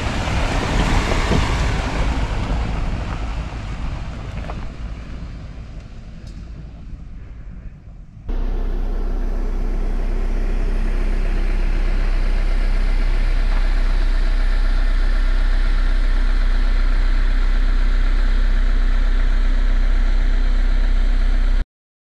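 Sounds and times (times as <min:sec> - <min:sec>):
tyre and road noise: 0:00.0 - 0:17.8
car engine hum: 0:00.0 - 0:21.6.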